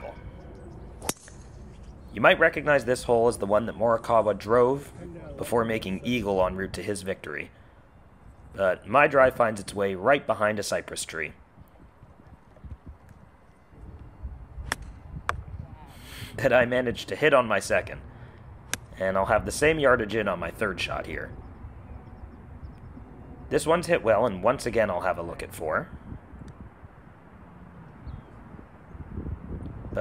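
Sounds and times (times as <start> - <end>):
wind rumble on microphone: 8.1 - 9.5, 11.3 - 17.0, 17.9 - 30.0.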